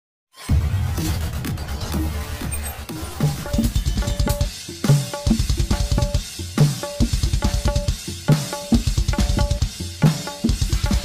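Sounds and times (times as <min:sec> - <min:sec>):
instrumental pop music: 0:00.4 - 0:11.0
hand-drum strokes: 0:01.0 - 0:11.0.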